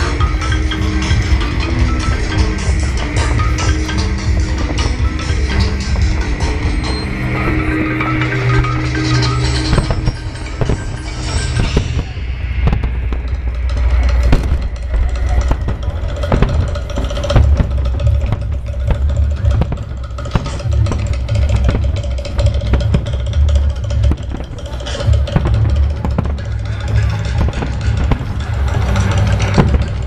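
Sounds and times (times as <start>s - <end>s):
fireworks booming: 0.0s - 30.0s
fireworks crackling: 0.0s - 30.0s.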